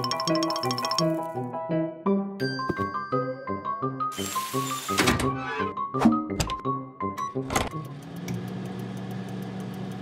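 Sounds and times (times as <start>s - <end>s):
oven humming: 7.6s - 10.0s.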